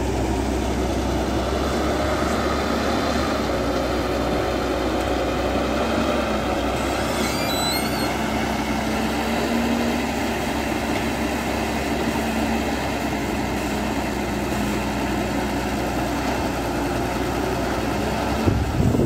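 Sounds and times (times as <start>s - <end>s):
excavator diesel engine under load: 0.0s - 19.0s.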